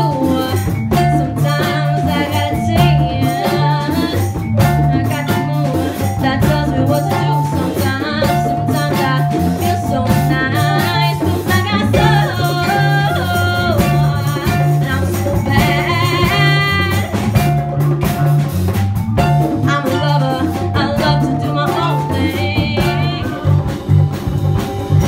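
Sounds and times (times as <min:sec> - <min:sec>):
woman singing into microphone: 0:00.0 - 0:17.5, 0:19.5 - 0:24.0
jazz band playing: 0:00.0 - 0:25.0
pulsing bass line: 0:00.0 - 0:25.0.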